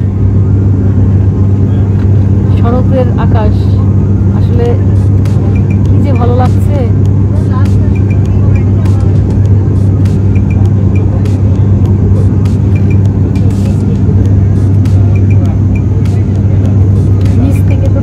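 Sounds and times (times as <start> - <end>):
propeller engines droning: 0.0 - 18.0.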